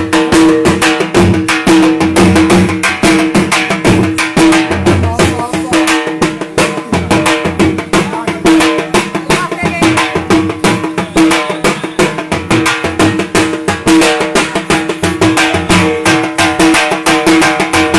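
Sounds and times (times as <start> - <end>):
drum beaten in a fast rhythm: 0.0 - 17.9.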